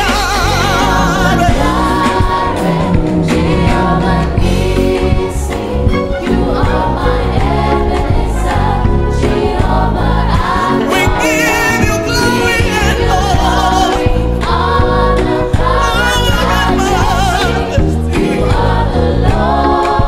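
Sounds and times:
band playing afro groove: 0:00.0 - 0:18.9
heavy bass line: 0:00.0 - 0:19.4
steady drum beat: 0:00.0 - 0:19.5
choir singing: 0:00.0 - 0:20.0.

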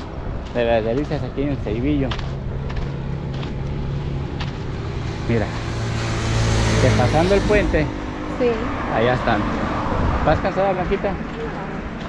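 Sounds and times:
road noise: 0:00.0 - 0:12.0
vehicle engine humming: 0:00.0 - 0:12.0.

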